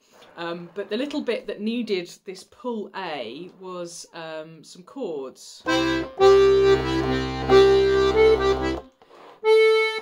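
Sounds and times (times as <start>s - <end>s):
accordion held note: 5.7s - 10.0s
button accordion playing chords: 5.7s - 10.0s.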